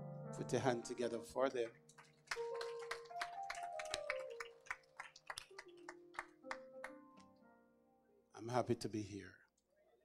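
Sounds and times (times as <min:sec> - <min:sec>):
congregation clapping: 0:01.1 - 0:07.0.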